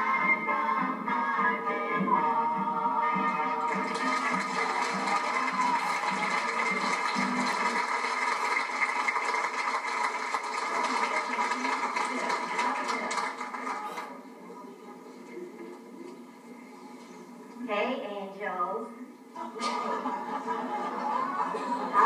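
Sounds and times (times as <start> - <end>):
song: 0.0 - 7.7
audience applause: 3.6 - 14.2.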